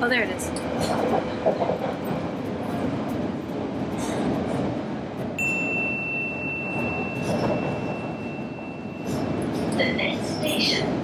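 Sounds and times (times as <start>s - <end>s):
underground train carriage rumble: 0.0s - 11.0s.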